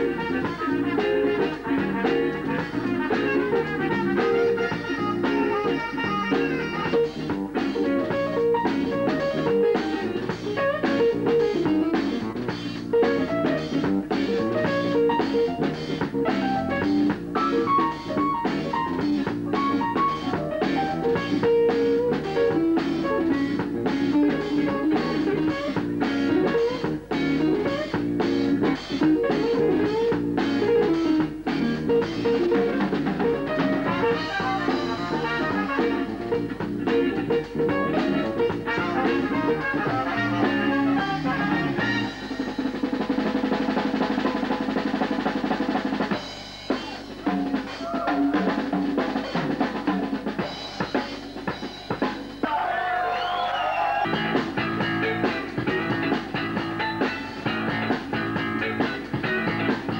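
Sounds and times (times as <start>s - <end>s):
electric guitar busy line: 0.0s - 52.1s, 53.0s - 59.9s
jazz band playing live: 0.0s - 52.5s, 53.9s - 59.9s
drum kit: 0.0s - 59.9s.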